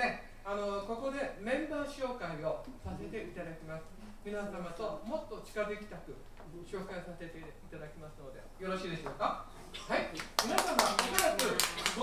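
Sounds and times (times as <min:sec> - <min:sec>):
audience clapping: 0:10.2 - 0:12.0.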